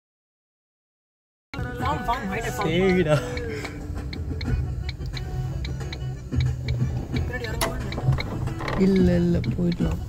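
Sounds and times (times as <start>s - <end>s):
car turn signal ticking: 1.6s - 10.0s
low rumble of moving car: 1.6s - 10.0s.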